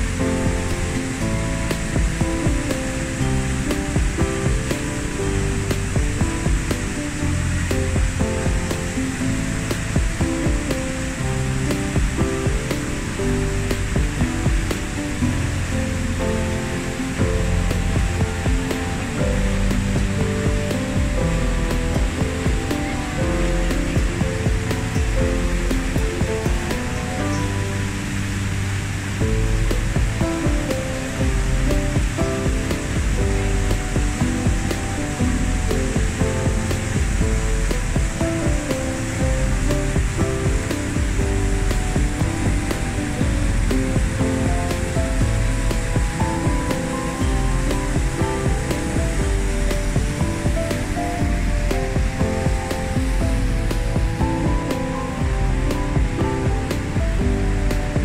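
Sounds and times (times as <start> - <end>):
background music melody: 0.0 - 58.0
waterfall rushing: 0.0 - 58.0.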